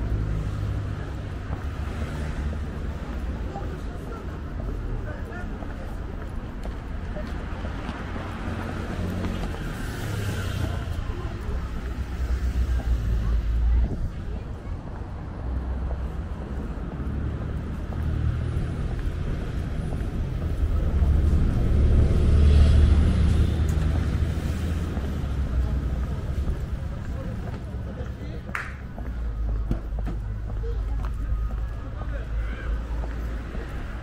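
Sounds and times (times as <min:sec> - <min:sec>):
cars driving past: 0:00.0 - 0:34.0
people talking faintly: 0:00.5 - 0:18.2.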